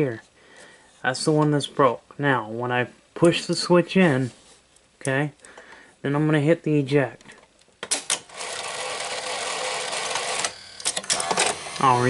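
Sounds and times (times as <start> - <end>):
small motor whirring: 8.3 - 12.0.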